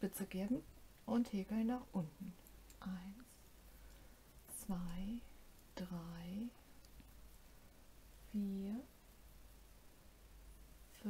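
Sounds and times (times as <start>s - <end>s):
woman counting softly: 0.1s - 3.4s, 4.5s - 6.6s, 8.3s - 8.9s.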